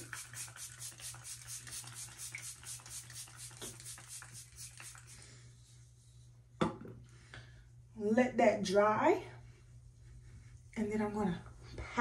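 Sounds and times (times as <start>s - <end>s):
spray pump hissing: 0.0s - 5.2s.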